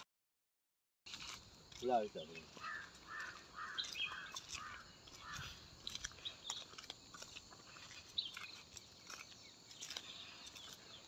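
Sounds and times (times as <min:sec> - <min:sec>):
faint open-air ambience: 0:01.1 - 0:11.0
high bird chirps: 0:02.5 - 0:07.2, 0:07.8 - 0:11.0.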